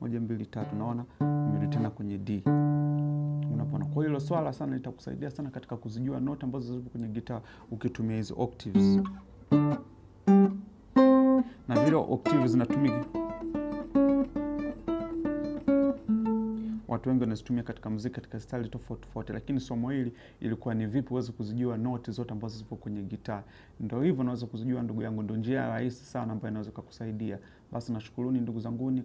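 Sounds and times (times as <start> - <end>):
acoustic guitar notes plucked: 0.4 - 4.8, 8.6 - 17.0.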